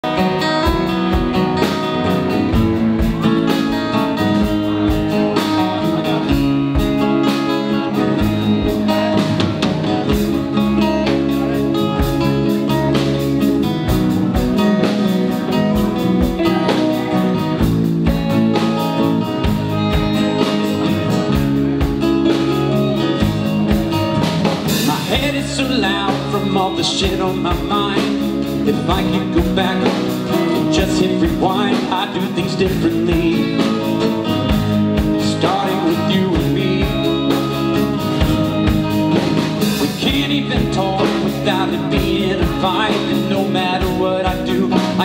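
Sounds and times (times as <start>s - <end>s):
acoustic guitars: 0.0s - 45.0s
drum kit steady beat: 0.0s - 45.0s
electric bass: 0.0s - 45.0s
electric guitar: 0.0s - 45.0s.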